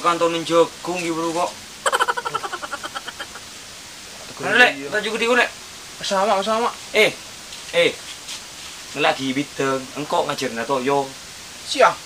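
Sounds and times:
person giggling: 0:01.8 - 0:03.4.

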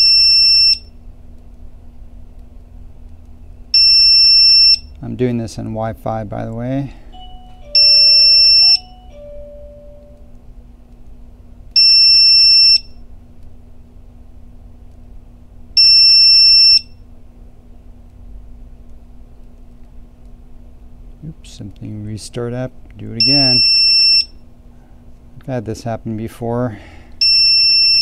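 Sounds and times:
faint steady hum: 0:00.0 - 0:28.0
low two-note tone: 0:07.1 - 0:10.4
long high electronic beep: 0:07.2 - 0:10.3, 0:23.2 - 0:24.2.

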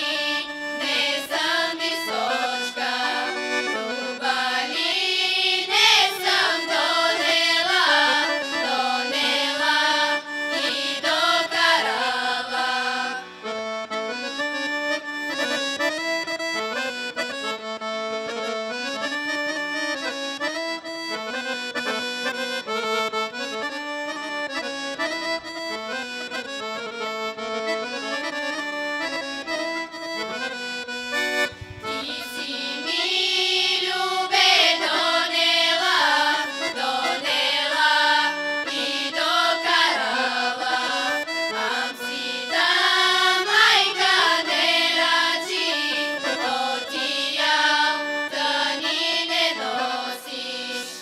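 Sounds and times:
women's group singing folk song: 0:00.0 - 0:13.3, 0:31.8 - 0:51.0
piano accordion: 0:00.0 - 0:51.0.

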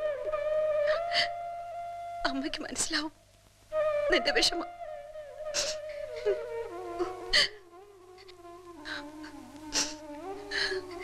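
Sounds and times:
soft film score held notes: 0:00.0 - 0:11.0
short breathy hiss: 0:05.6 - 0:06.0.

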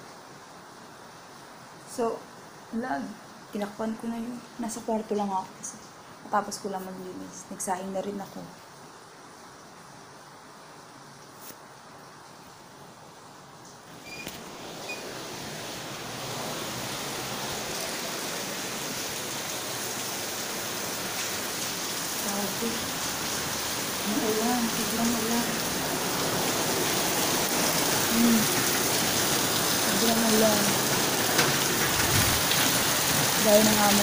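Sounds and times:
heavy rain falling: 0:13.0 - 0:34.0.

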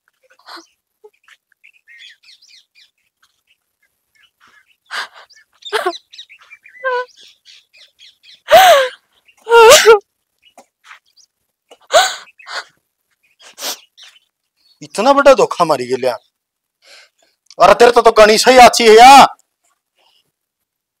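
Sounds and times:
faint birds chirping: 0:00.0 - 0:18.1, 0:19.4 - 0:20.6
woman wailing sobs: 0:05.7 - 0:06.0, 0:06.8 - 0:07.1, 0:08.5 - 0:10.0.

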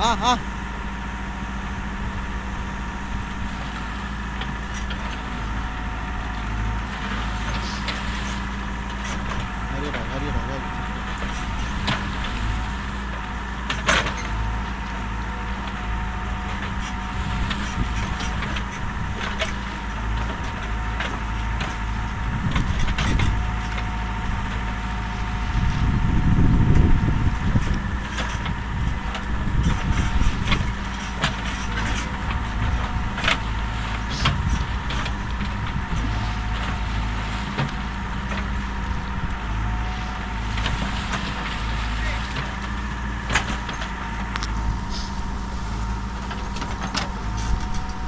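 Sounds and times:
diesel engine running: 0:00.0 - 0:48.0.

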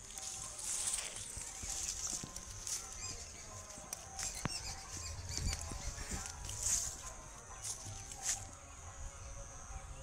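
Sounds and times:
high-pitched chirps and squeaks: 0:04.2 - 0:06.2.

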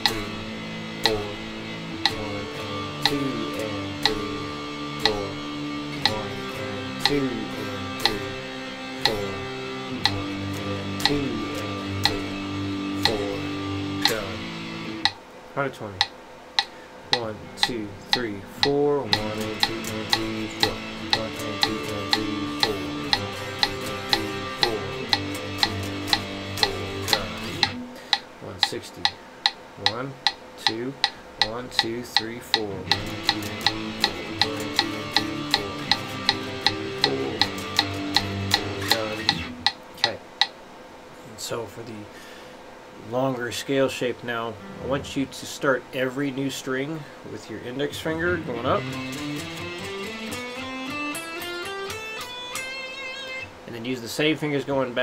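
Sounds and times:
metronome clicking: 0:00.0 - 0:08.4, 0:09.0 - 0:15.2, 0:16.0 - 0:40.6, 0:48.3 - 0:53.5
electric guitar power chords: 0:00.0 - 0:15.2, 0:16.6 - 0:29.2, 0:31.0 - 0:40.2, 0:44.6 - 0:45.6, 0:47.7 - 0:53.7.

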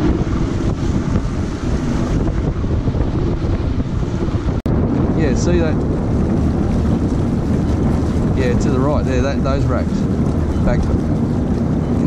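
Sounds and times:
water rushing along boat hull: 0:00.0 - 0:12.0
wind rumble on microphone: 0:00.0 - 0:12.0.

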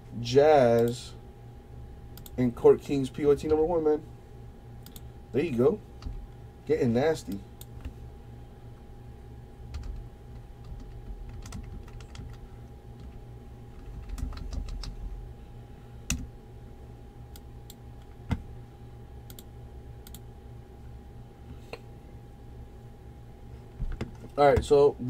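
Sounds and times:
low electrical hum: 0:00.0 - 0:25.0
computer keyboard clicks: 0:09.7 - 0:12.4, 0:13.8 - 0:15.0.

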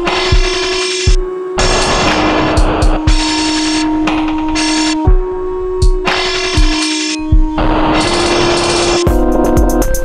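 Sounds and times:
harsh buzzing noise texture: 0:00.0 - 0:05.1, 0:06.0 - 0:09.9
low drone tone: 0:00.0 - 0:10.0.

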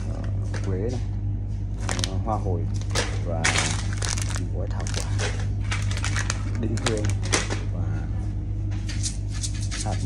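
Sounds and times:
ventilation system humming: 0:00.0 - 0:10.0.

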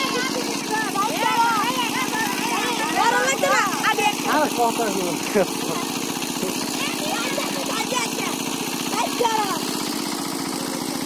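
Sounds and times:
people talking over one another: 0:00.0 - 0:04.7
small engine running: 0:00.0 - 0:11.0.

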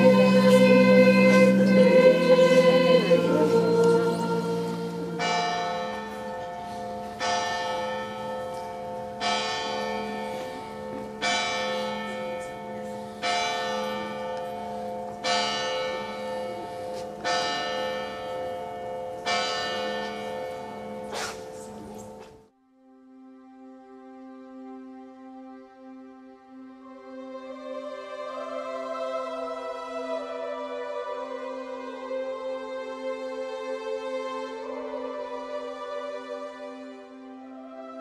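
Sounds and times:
voices singing: 0:00.0 - 0:06.1, 0:27.0 - 0:38.0
church bell tolling: 0:00.0 - 0:22.2.

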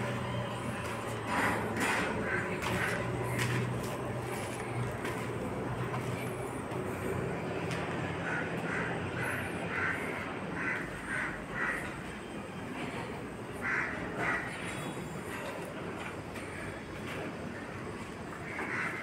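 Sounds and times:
steady low hum: 0:00.0 - 0:18.9
crows cawing: 0:00.7 - 0:12.3, 0:13.6 - 0:15.4, 0:17.6 - 0:19.0.

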